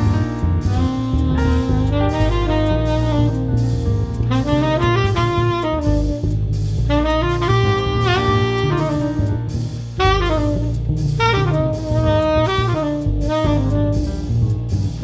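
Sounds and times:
tenor saxophone long notes: 0.0s - 15.0s.

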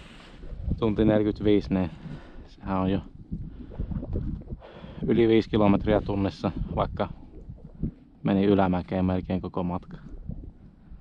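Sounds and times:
wind buffeting microphone: 0.0s - 8.0s.

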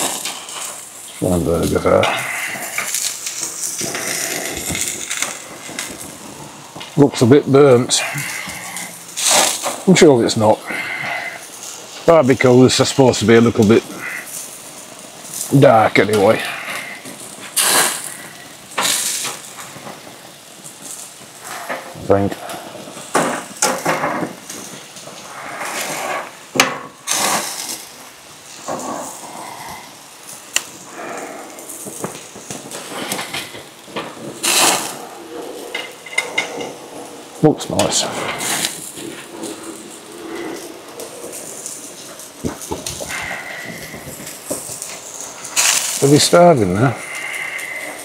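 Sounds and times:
voices talking: 1.1s - 3.0s, 3.8s - 14.4s, 15.0s - 17.3s, 21.4s - 23.0s, 34.8s - 48.0s
grill utensils clicking and knocking: 1.6s - 25.8s, 31.9s - 48.0s.

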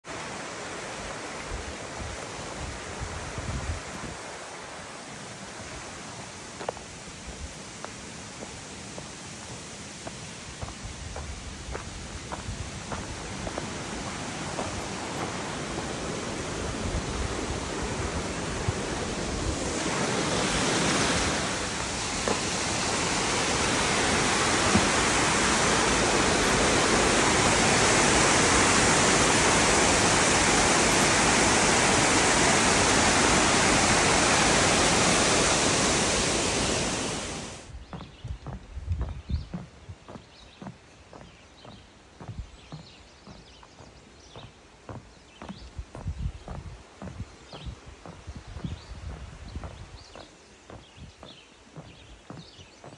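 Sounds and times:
waterfall rushing: 0.0s - 37.7s
footsteps: 6.6s - 26.1s, 37.6s - 52.9s.

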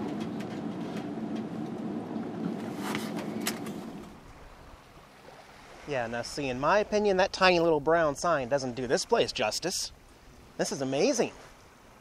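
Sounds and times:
engine humming: 0.0s - 5.1s.

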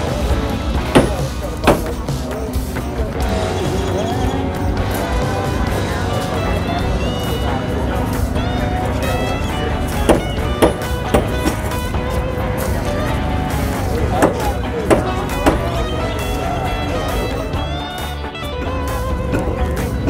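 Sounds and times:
music with held notes: 0.0s - 20.0s
voices: 0.0s - 20.0s
sharp knocks: 0.8s - 2.1s, 10.0s - 11.7s, 14.2s - 15.7s.

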